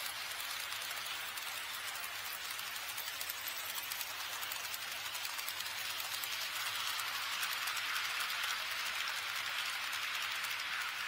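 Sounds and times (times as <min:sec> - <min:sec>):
model train wheels whirring on rails: 0:00.0 - 0:11.0.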